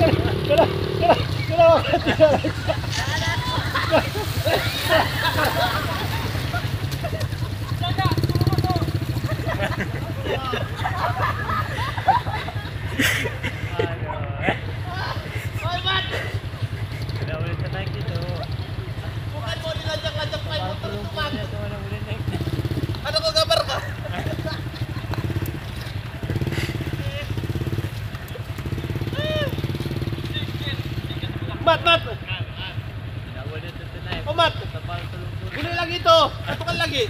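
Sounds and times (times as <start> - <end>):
voices: 0.0 - 37.0
motorcycle engine under load: 6.6 - 10.3.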